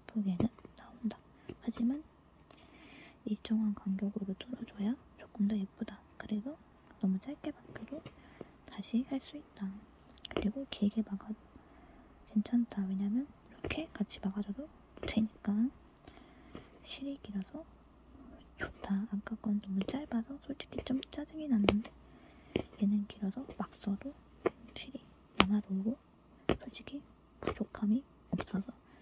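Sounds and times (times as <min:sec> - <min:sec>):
person whispering: 0:00.1 - 0:02.0
punch needle clicking through cloth: 0:19.7 - 0:22.0, 0:25.4 - 0:25.8, 0:26.5 - 0:26.8.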